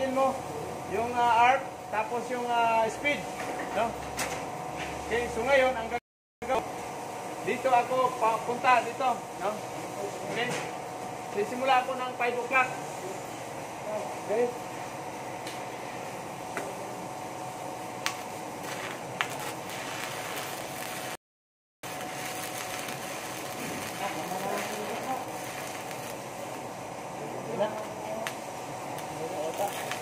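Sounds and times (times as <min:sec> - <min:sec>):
welding arc hissing: 0:17.9 - 0:21.2, 0:21.8 - 0:30.0
sharp welding clicks: 0:18.0 - 0:21.0, 0:21.9 - 0:26.2, 0:29.0 - 0:30.0.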